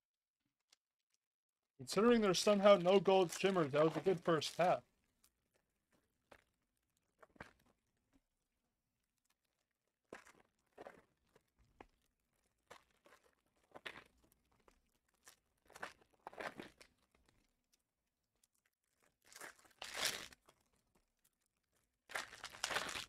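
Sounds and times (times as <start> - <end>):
foil wrappers tearing and crinkling: 18.8 - 20.5, 22.2 - 23.0.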